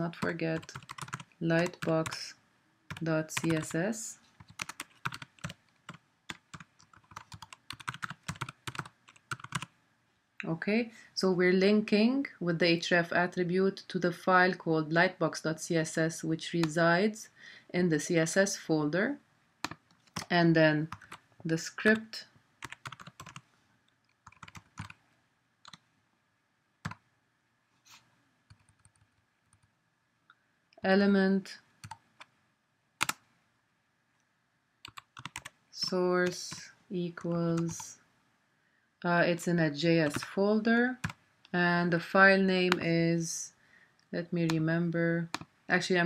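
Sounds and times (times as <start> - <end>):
computer keyboard typing: 0.0 - 2.2, 2.9 - 3.8, 4.4 - 9.7, 19.6 - 20.3, 22.6 - 23.4, 24.2 - 25.0, 28.5 - 29.7, 31.8 - 32.3, 33.0 - 33.2, 34.8 - 35.6, 40.0 - 40.3, 41.0 - 41.2.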